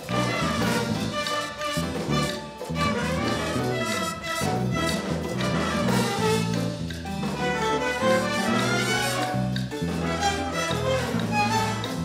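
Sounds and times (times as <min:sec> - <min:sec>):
bass piano guitar and drums: 0:00.0 - 0:12.0
trumpets and trombone: 0:00.0 - 0:12.0.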